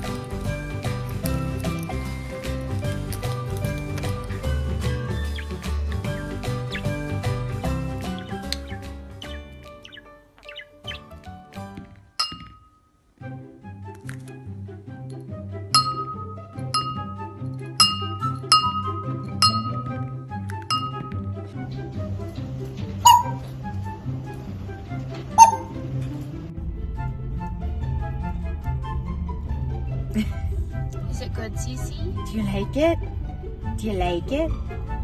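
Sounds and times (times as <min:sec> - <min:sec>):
light background music: 0:00.0 - 0:35.0
bird chirps: 0:04.3 - 0:11.2, 0:23.0 - 0:23.4, 0:25.4 - 0:25.8
parrot calls: 0:05.1 - 0:11.2, 0:23.0 - 0:23.4
sharp ringing clink: 0:12.2 - 0:12.9, 0:15.8 - 0:20.1, 0:20.7 - 0:21.2.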